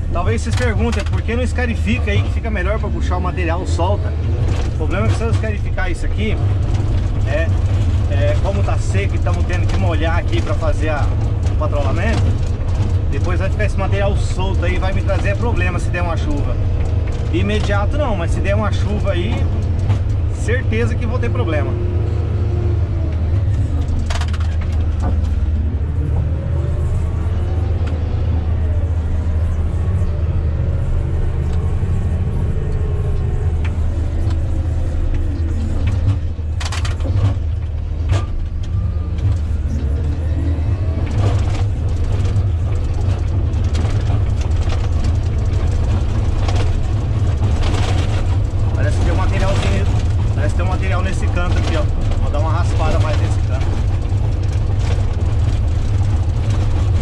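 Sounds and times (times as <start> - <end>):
diesel engine running under load: 0.0 - 57.0.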